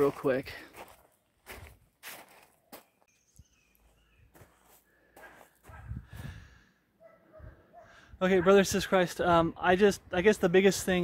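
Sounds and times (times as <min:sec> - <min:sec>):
footsteps on gravel: 0:00.0 - 0:03.1, 0:03.8 - 0:05.9.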